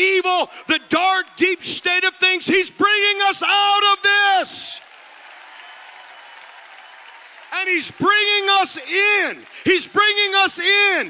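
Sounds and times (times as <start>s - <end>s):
congregation applauding: 2.0s - 11.0s.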